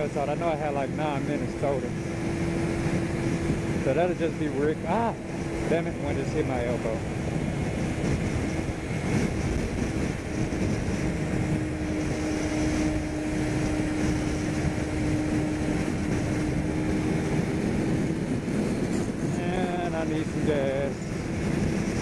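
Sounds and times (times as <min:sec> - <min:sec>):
motorcycle engine hum: 0:00.0 - 0:22.0
wind rushing over microphone: 0:00.0 - 0:22.0.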